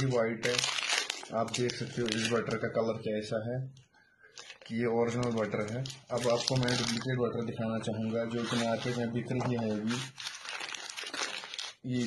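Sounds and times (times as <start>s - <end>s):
paper wrapper crinkling: 0.0s - 2.7s, 4.4s - 12.0s.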